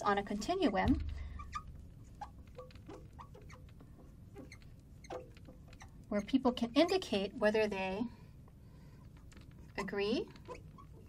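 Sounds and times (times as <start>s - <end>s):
marker squeaking on glass: 1.2s - 7.1s, 9.7s - 11.0s.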